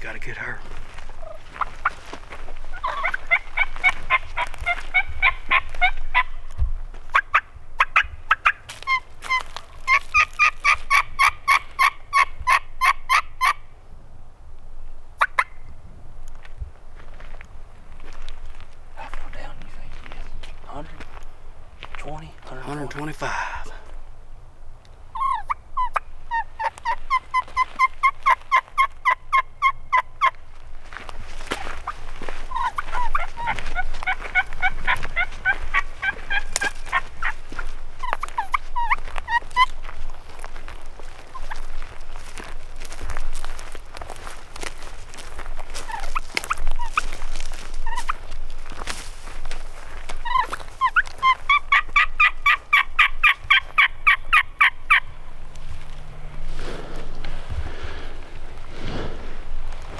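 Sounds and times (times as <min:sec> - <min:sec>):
turkey calls yelping: 0:01.1 - 0:02.0, 0:02.7 - 0:06.4, 0:07.1 - 0:13.6, 0:15.2 - 0:15.6, 0:25.1 - 0:30.4, 0:31.6 - 0:39.8, 0:41.2 - 0:41.8, 0:45.7 - 0:48.3, 0:50.1 - 0:55.2.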